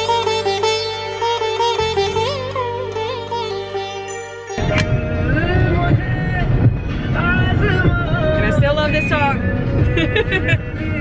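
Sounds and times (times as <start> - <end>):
song with singing voice: 2.0 - 11.0
road and engine rumble in car: 4.6 - 11.0.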